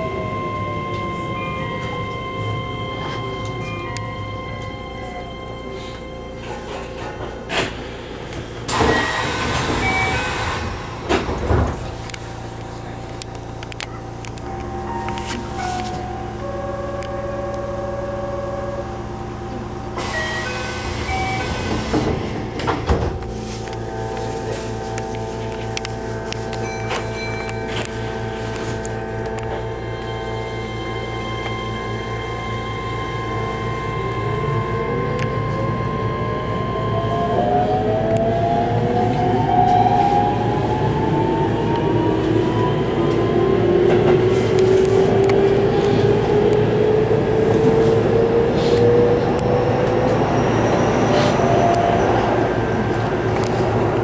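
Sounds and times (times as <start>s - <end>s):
rail rumble: 0.0s - 54.0s
train traction motor whine: 0.0s - 54.0s.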